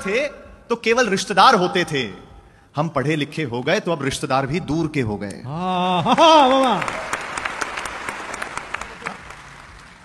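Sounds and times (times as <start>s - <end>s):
audience applauding: 6.1s - 10.0s.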